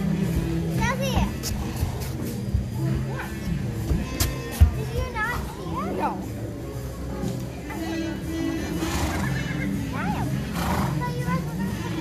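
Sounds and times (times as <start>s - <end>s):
music playing: 0.0s - 12.0s
horse whinnying: 7.8s - 11.0s.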